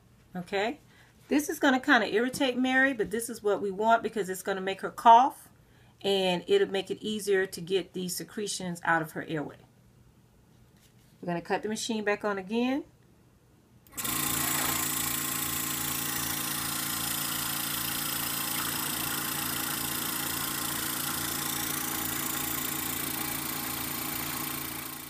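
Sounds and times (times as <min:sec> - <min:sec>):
suction machine motor hum: 0:13.9 - 0:25.0.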